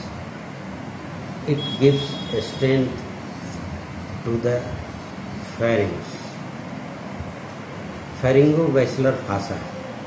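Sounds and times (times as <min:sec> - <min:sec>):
steady hiss with low rumble: 0:00.0 - 0:10.0.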